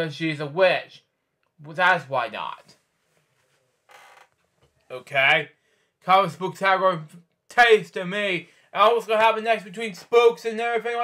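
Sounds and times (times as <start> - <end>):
book creaking when handled: 3.8 - 4.7.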